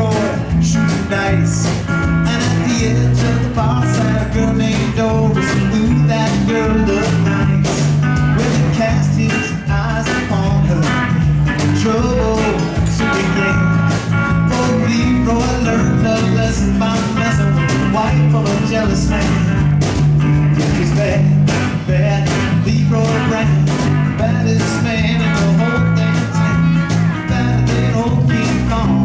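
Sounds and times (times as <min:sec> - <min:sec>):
acoustic guitar: 0:00.0 - 0:29.0
bass guitar: 0:00.0 - 0:29.0
drums: 0:00.0 - 0:29.0
electric guitar: 0:00.0 - 0:29.0.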